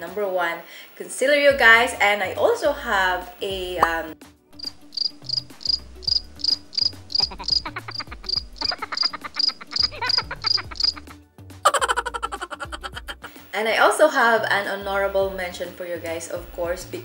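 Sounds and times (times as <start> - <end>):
soft background music: 0.0 - 17.0
cricket chirps: 4.6 - 11.0.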